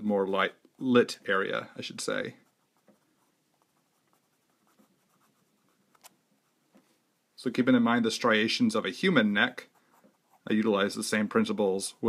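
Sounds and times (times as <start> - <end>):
pen scratching on paper: 2.4 - 6.6, 9.6 - 10.6.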